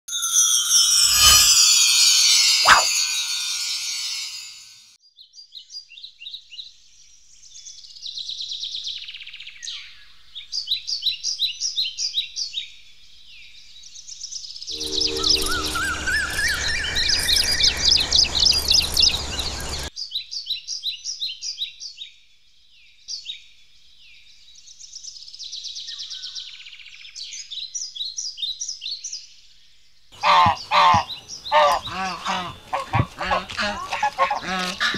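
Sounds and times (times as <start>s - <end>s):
birds chirping in trills: 1.0s - 4.8s, 14.7s - 19.9s, 30.2s - 34.9s.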